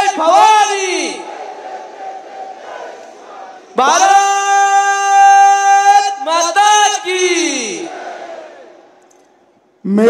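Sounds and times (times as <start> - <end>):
man speaking over public address: 0.0 - 1.2, 3.8 - 7.9.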